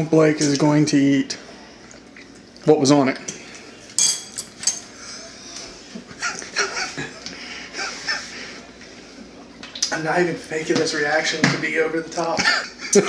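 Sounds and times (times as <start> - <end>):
man coughing and gasping: 12.4 - 13.0.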